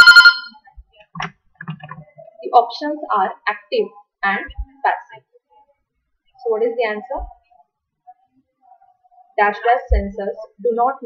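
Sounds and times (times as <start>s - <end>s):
electronic alert tone: 0.0s - 0.6s.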